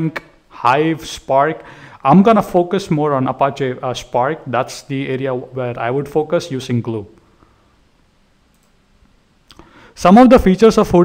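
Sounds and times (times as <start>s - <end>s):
person speaking: 0.0s - 7.3s, 9.5s - 11.0s
computer mouse clicks: 8.5s - 8.8s.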